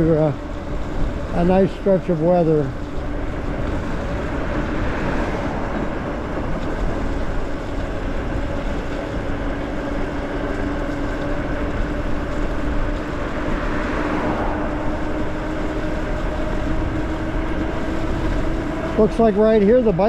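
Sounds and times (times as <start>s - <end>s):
tyre noise on wet pavement: 0.0s - 20.0s
wind rushing over microphone: 0.0s - 20.0s
electric motor whine: 0.3s - 20.0s.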